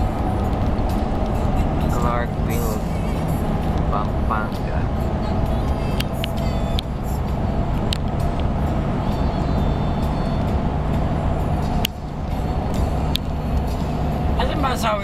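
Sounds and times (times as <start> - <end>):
music from car stereo: 0.0 - 15.0
road and engine noise in car: 0.0 - 15.0.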